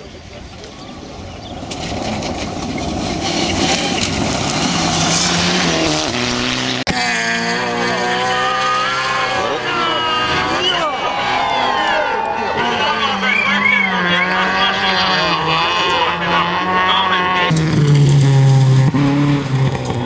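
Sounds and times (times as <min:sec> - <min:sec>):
rally car engine at speed: 0:00.3 - 0:20.0
rally car engine revving: 0:00.6 - 0:20.0.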